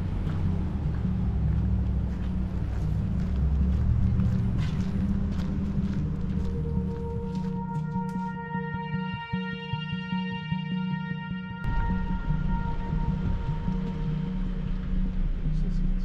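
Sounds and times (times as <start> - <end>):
deep low drone: 0.0 - 9.4, 11.6 - 16.0
sustained higher tones: 6.5 - 16.0.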